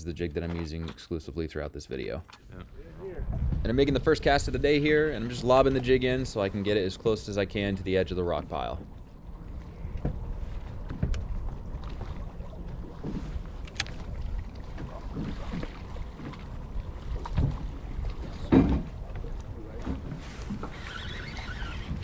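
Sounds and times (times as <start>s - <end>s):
wind rumbling on microphone: 2.5s - 22.0s.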